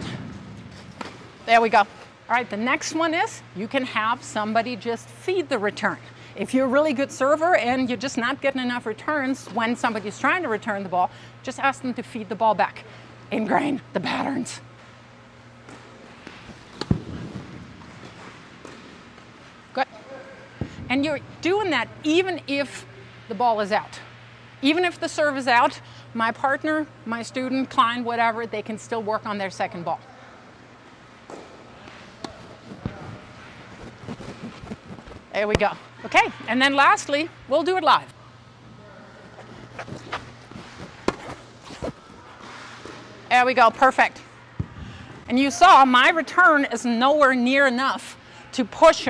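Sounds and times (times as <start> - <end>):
low steady hum: 0.0 - 49.0
ball bouncing: 15.6 - 19.3, 31.2 - 33.2, 33.8 - 35.8, 39.8 - 42.0, 44.5 - 44.8
tennis ball struck with racket: 41.0 - 41.4.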